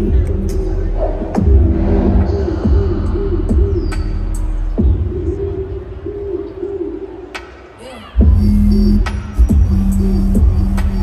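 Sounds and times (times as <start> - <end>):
deep bass: 0.0 - 5.4
short sweeping sound: 1.4 - 4.3.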